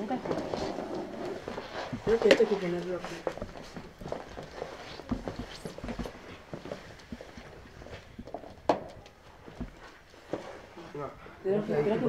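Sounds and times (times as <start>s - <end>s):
clothing rustle: 0.0s - 12.0s.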